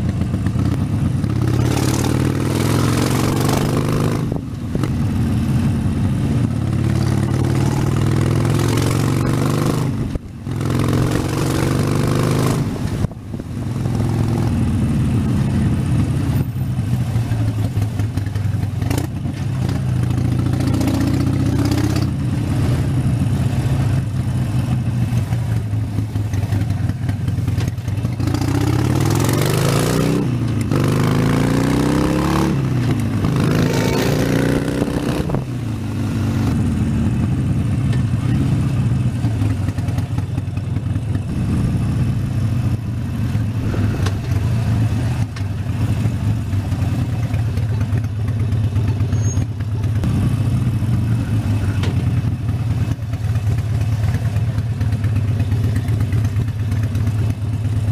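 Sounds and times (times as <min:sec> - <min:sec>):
motorcycle engine revving: 0:00.0 - 0:57.9
wind noise: 0:31.1 - 0:36.6, 0:41.3 - 0:45.3.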